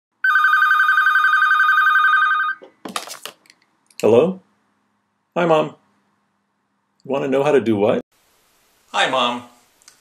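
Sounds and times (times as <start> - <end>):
telephone ringing: 0.2 - 2.6.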